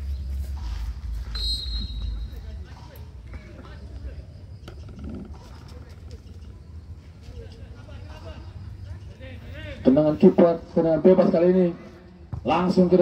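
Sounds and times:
referee's whistle blast: 1.3s - 2.4s.

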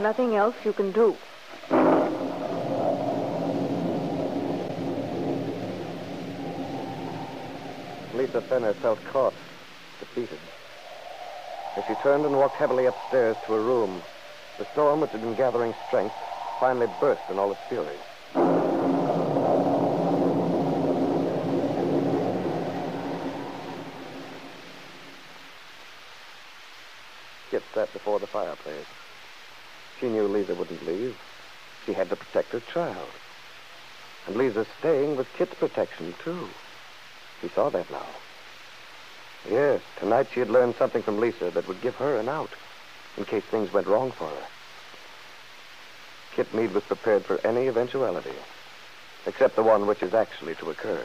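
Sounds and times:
thunder crash and rumble: 1.6s - 9.6s, 11.8s - 25.2s.

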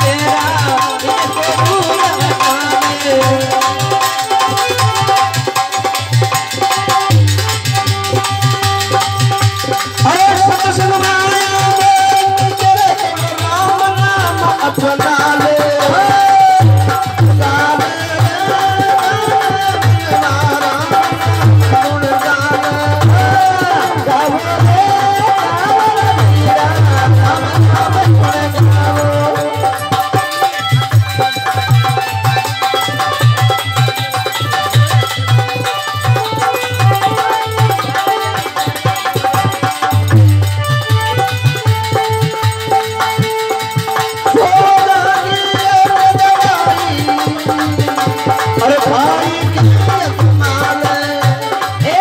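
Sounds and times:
hand drum steady rhythm: 0.0s - 52.0s
harmonium melody: 0.0s - 52.0s
man singing: 0.0s - 52.0s.

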